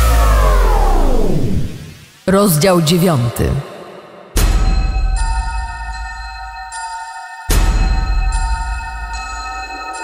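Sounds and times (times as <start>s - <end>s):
falling synthesizer sweep: 0.0s - 4.9s
deep bass hit: 3.6s - 5.8s.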